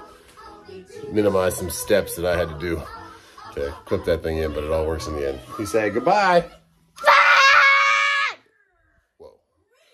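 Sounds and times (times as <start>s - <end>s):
child's high-pitched shout: 7.0s - 8.5s.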